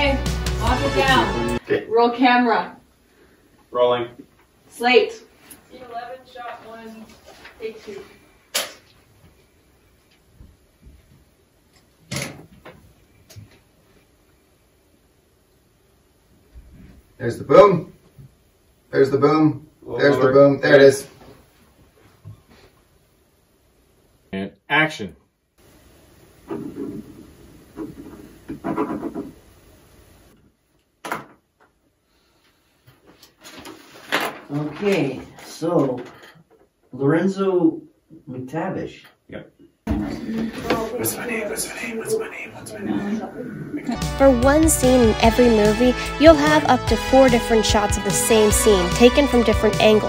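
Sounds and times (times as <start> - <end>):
muffled voices: 39.9 - 44.6.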